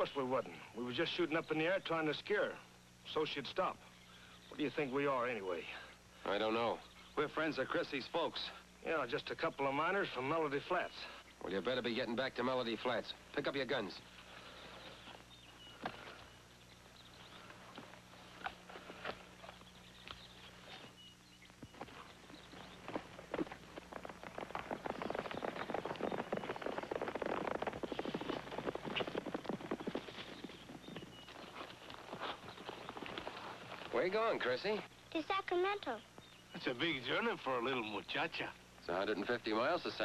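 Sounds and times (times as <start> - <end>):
horses galloping hoofbeats: 9.0 - 34.8.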